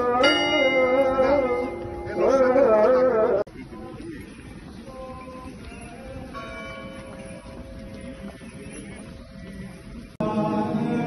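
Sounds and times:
bell tolling: 0:00.0 - 0:03.1.

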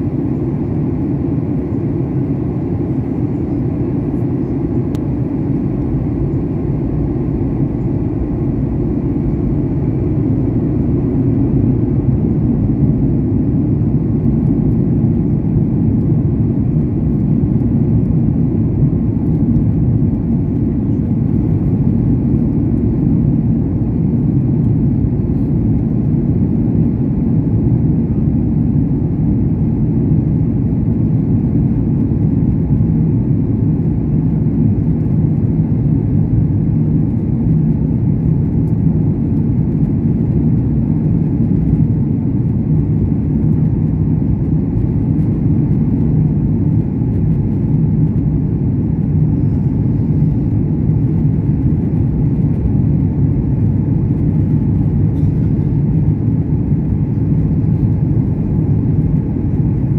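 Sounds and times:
airliner cabin engine rumble: 0:00.0 - 0:59.9.

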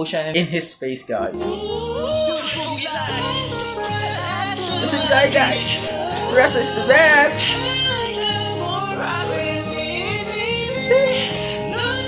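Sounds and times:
man singing: 0:01.1 - 0:12.0
acoustic guitar: 0:01.2 - 0:12.0.

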